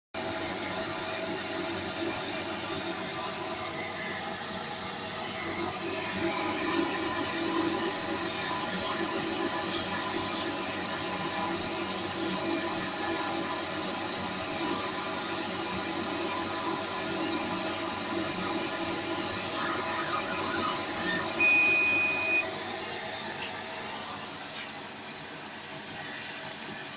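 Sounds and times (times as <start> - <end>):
laser cutter mechanical hum: 0.2 - 26.9
loud controller beep: 21.4 - 22.5.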